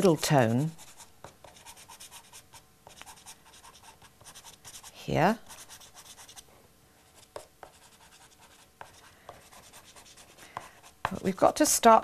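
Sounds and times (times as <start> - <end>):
pastel scratching on paper: 0.0 - 6.4, 7.0 - 11.3.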